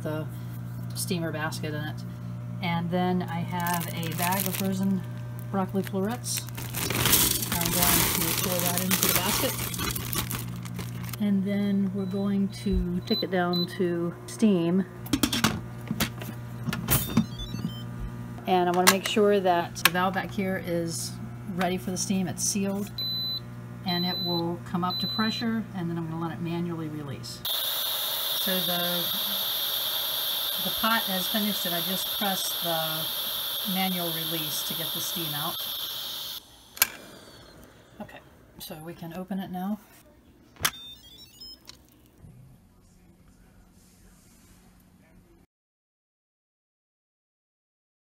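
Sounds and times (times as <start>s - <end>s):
steam release hissing: 27.5s - 37.6s
high electronic beeps: 40.7s - 41.7s.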